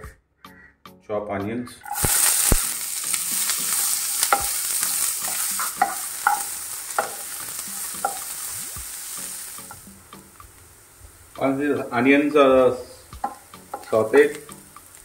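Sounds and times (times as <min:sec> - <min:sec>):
onions sizzling in hot oil: 0:01.8 - 0:15.0.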